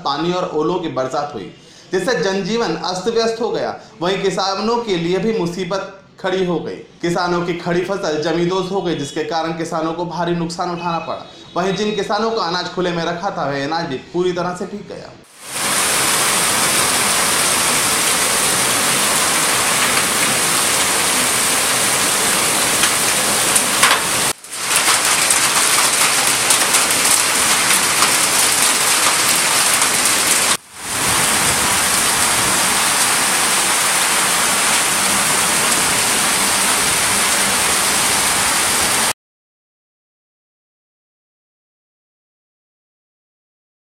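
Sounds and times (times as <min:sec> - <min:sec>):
heavy rain on street: 0:15.3 - 0:39.2.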